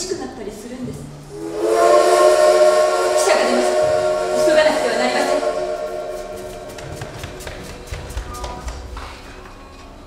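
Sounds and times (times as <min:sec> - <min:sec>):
sustained whistle-like chord: 0:01.3 - 0:07.7.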